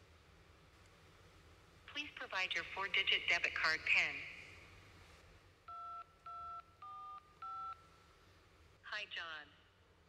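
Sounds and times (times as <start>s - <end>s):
telephone keypad tones: 5.7s - 7.9s.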